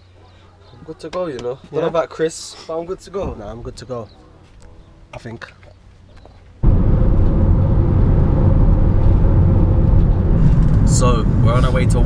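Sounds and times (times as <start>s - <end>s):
road and engine rumble in cabin: 6.6s - 12.0s.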